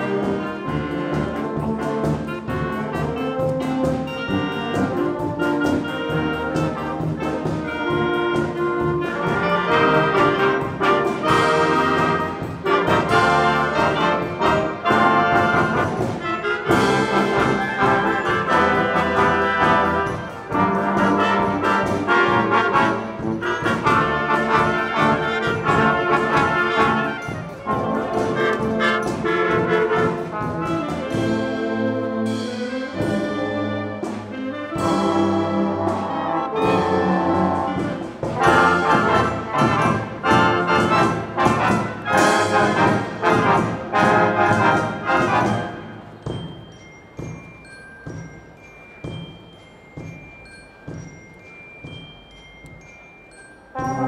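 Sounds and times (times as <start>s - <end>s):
marching band playing: 0.0s - 54.0s.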